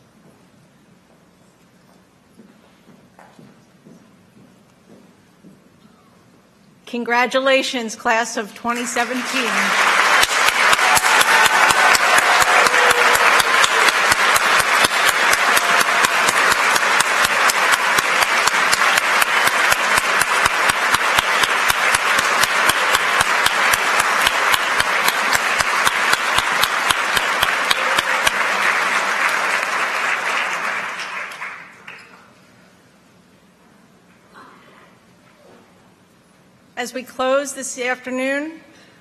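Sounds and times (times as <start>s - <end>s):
large audience applauding: 8.8s - 32.3s
close loud even claps: 8.8s - 32.4s.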